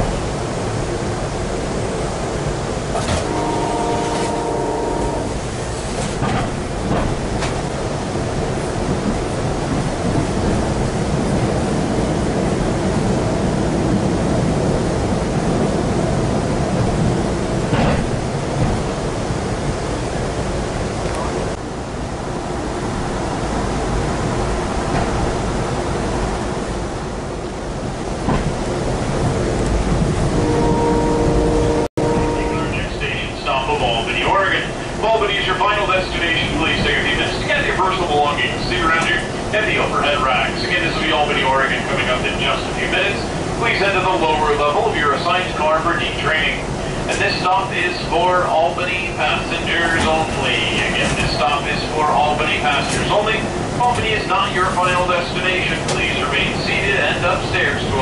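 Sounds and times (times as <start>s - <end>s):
train wheels rumbling on rail: 0.0s - 58.0s
train horn chord: 3.1s - 5.4s, 30.4s - 32.8s
train wheel knocks: 5.8s - 7.6s, 17.6s - 18.9s, 28.2s - 28.6s.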